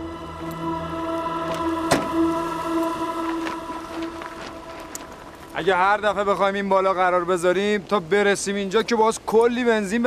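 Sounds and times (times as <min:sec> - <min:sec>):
droning music chord: 0:00.0 - 0:06.7
car door shutting: 0:01.9 - 0:02.2.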